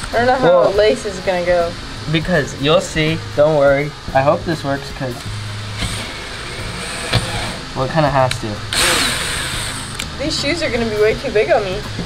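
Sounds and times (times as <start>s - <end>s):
high whine: 0.0s - 11.6s
cordless drill boring: 5.2s - 7.7s, 8.7s - 10.1s.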